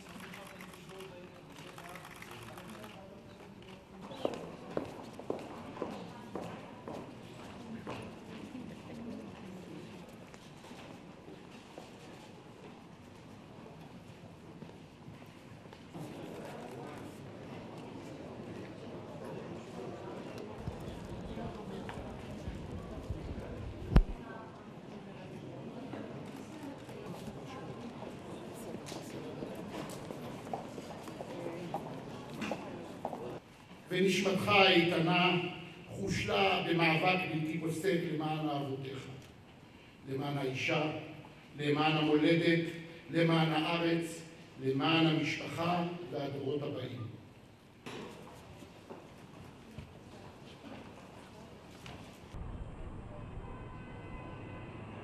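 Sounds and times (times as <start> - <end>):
murmur of voices: 0.0 - 52.4.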